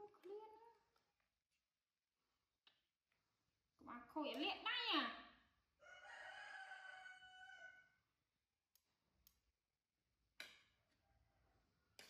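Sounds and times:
rooster crowing: 0:05.8 - 0:08.0.

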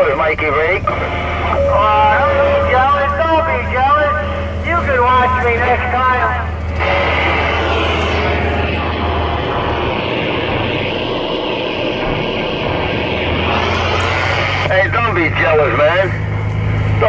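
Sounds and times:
truck engine and road noise: 0:00.0 - 0:17.0.

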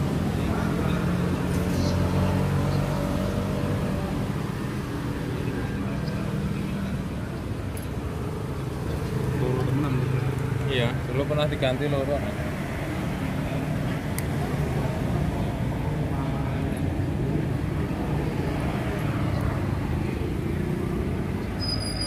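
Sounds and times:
road traffic: 0:00.0 - 0:22.0
vehicle engine humming: 0:00.0 - 0:22.0.

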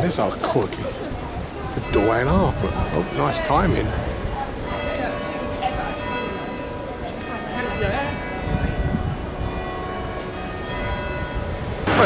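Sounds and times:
low street noise: 0:00.0 - 0:12.0
church bells ringing: 0:00.8 - 0:12.0.

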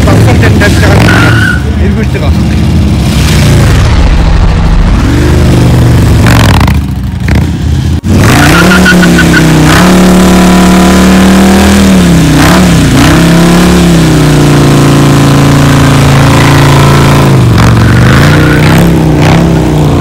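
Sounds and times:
motorcycle burnout at high revs: 0:00.0 - 0:20.0
motorcycle engine revving: 0:00.0 - 0:20.0.

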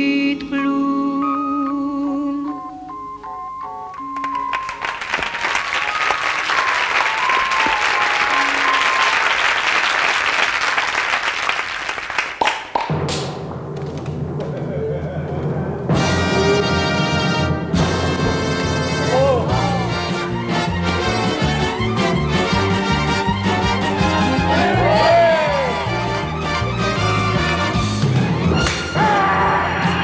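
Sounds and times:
band playing: 0:02.8 - 0:10.2, 0:13.5 - 0:30.0
audience applauding: 0:04.1 - 0:13.2, 0:23.6 - 0:27.4.

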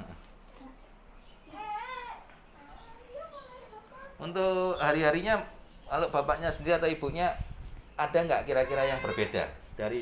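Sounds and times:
baby crying: 0:08.5 - 0:09.5.

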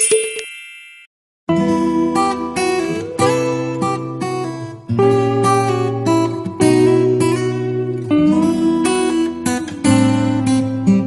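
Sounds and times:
bright chime: 0:00.0 - 0:01.1
strummed acoustic guitar music: 0:01.5 - 0:11.0.

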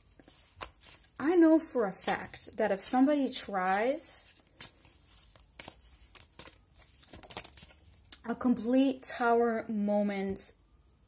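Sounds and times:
cards being shuffled: 0:00.0 - 0:08.2.

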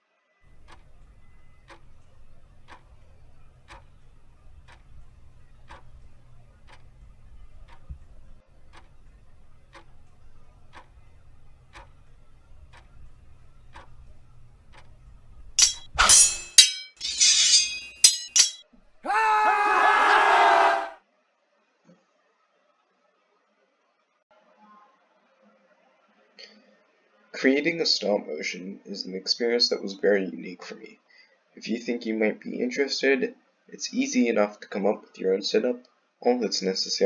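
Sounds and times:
sharp clock-like ticks: 0:00.5 - 0:16.0.

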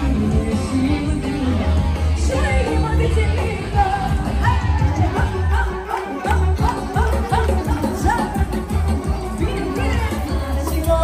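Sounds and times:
live band with heavy bass: 0:00.0 - 0:11.0
person singing: 0:00.0 - 0:11.0.

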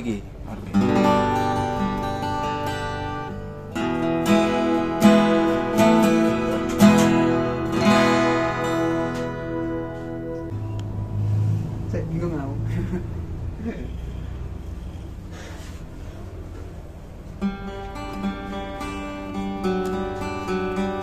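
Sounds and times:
acoustic guitar chords strummed: 0:00.5 - 0:11.9, 0:17.2 - 0:21.0.

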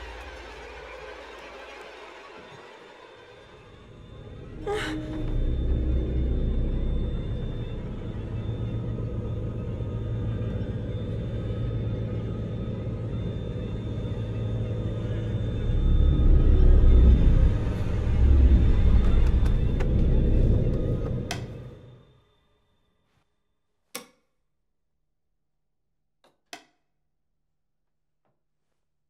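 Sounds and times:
low rumbling drone: 0:03.4 - 0:22.2.

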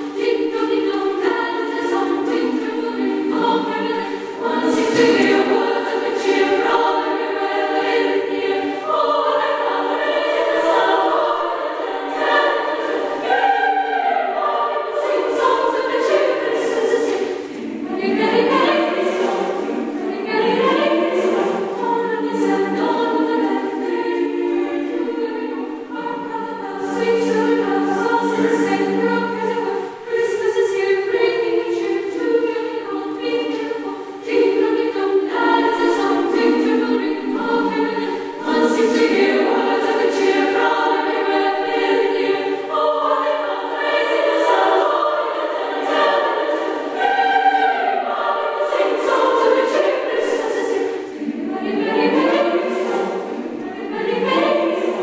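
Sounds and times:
choir singing sustained chords: 0:00.0 - 0:55.0.

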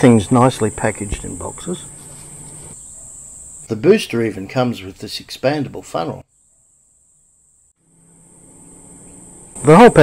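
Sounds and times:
high-pitched insect chirring: 0:00.0 - 0:04.0, 0:06.3 - 0:10.0.

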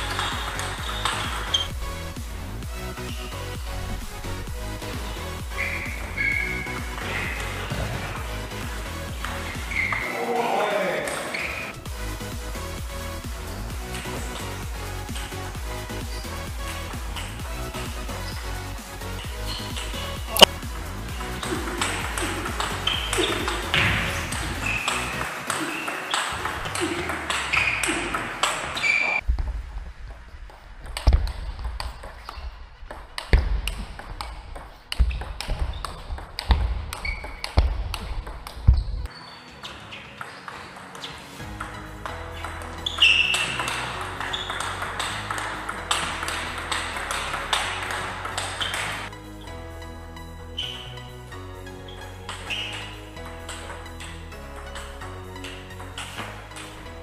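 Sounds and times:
ball bouncing on table: 0:00.0 - 0:01.7, 0:21.4 - 0:29.0, 0:30.8 - 0:39.0, 0:42.4 - 0:49.1
ping pong ball clicking off paddles: 0:00.0 - 0:01.7, 0:21.2 - 0:29.2, 0:30.8 - 0:38.8, 0:39.7 - 0:49.1, 0:52.3 - 0:56.9
background music: 0:00.0 - 0:57.0.

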